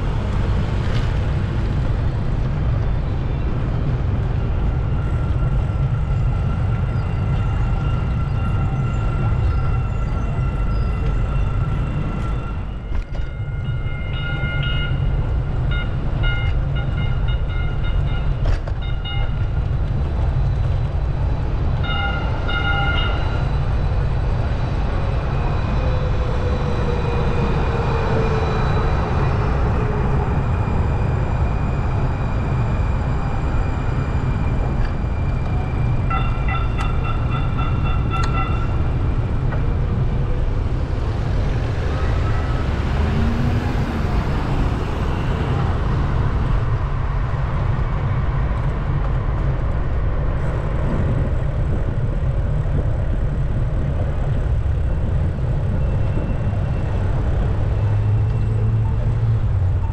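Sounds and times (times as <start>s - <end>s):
train whine: 0.0s - 59.9s
train bell ringing: 5.2s - 19.8s, 21.8s - 25.0s, 30.3s - 40.1s.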